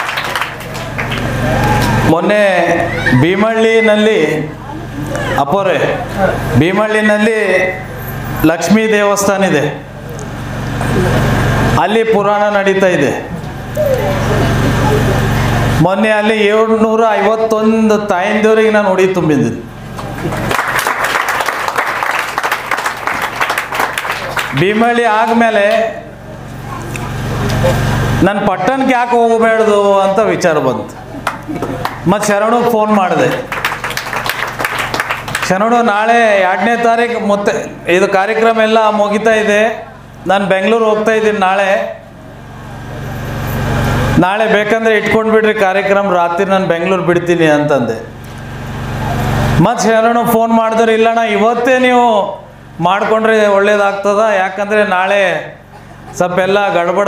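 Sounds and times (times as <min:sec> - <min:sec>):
low hum with hiss: 0:00.0 - 0:57.0
man talking: 0:02.1 - 0:04.6, 0:05.4 - 0:09.8, 0:24.5 - 0:26.2, 0:27.6 - 0:31.0, 0:32.0 - 0:33.5.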